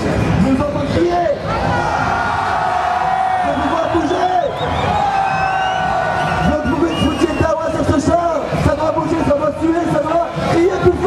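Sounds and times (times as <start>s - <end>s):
loud house music: 0.0s - 11.0s
crowd cheering and whooping: 1.4s - 11.0s.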